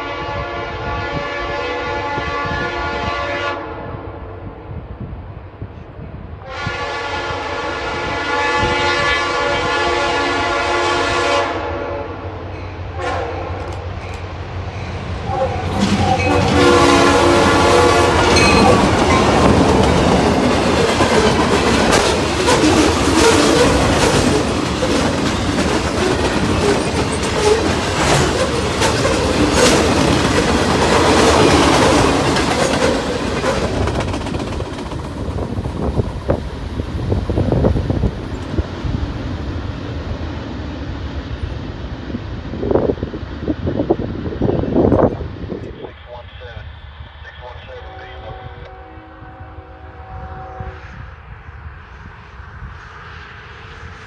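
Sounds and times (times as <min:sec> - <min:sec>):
locomotive air horn blasts: 0:00.0 - 0:04.1, 0:06.4 - 0:12.3, 0:12.9 - 0:13.6, 0:15.3 - 0:18.9, 0:47.7 - 0:51.1
train rumbling past: 0:00.0 - 0:54.0
wheels clacking over rail joints: 0:13.6 - 0:36.5.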